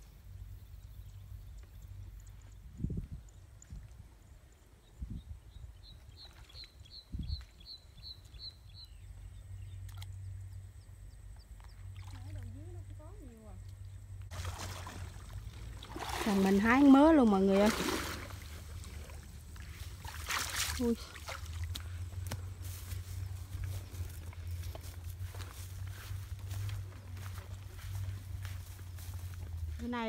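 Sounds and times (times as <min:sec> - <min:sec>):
bird chirping: 0:04.8 - 0:12.0
water sloshing: 0:11.5 - 0:13.0, 0:13.6 - 0:29.6.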